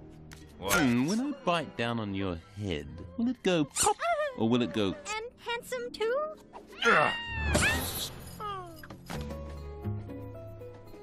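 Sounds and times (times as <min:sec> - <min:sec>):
film music: 0:00.0 - 0:11.0
cartoon bird screech: 0:06.8 - 0:08.1.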